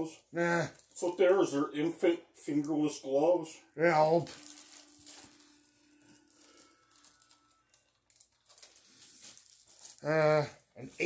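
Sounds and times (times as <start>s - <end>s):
plastic packaging crinkling: 0.7s - 1.2s, 4.2s - 11.0s.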